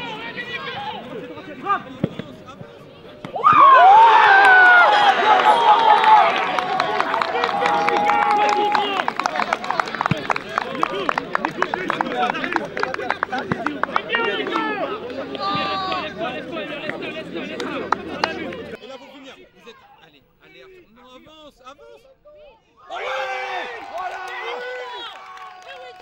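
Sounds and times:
players yelling and cheering: 3.2s - 20.1s, 22.7s - 26.0s
sharp claps: 5.4s - 16.1s, 16.8s - 18.7s.

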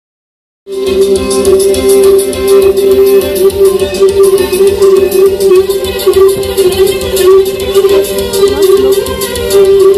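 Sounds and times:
bowed fiddle folk tune: 0.7s - 9.9s.

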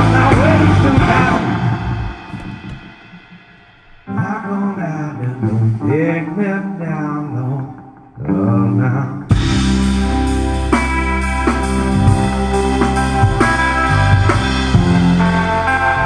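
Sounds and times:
loud ringing chord: 0.0s - 4.3s
guitar and bass lines: 0.0s - 16.0s
live rock band: 0.0s - 16.0s.

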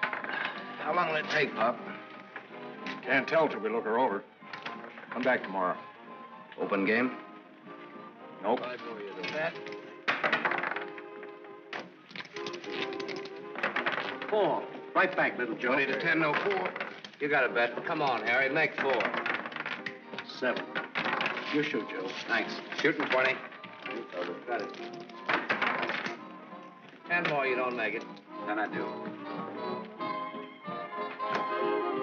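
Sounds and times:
dice clattering: 0.0s - 3.1s, 8.6s - 29.1s
soft background music: 0.0s - 32.0s.

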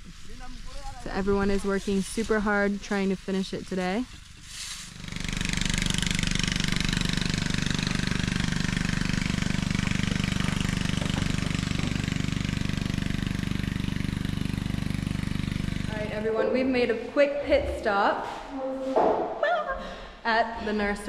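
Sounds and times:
vehicle engine running: 0.0s - 18.0s.

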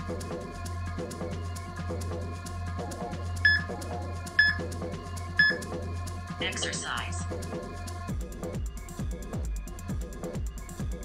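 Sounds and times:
electronic music with steady beat: 2.4s - 11.0s
electronic countdown beeps: 3.5s - 3.7s, 4.4s - 4.6s, 5.4s - 5.6s
electronic voice prompt: 6.4s - 7.2s.

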